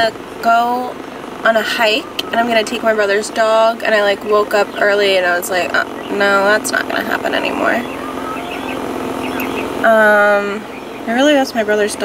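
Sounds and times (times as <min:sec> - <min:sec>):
car idling from inside: 0:00.1 - 0:11.9.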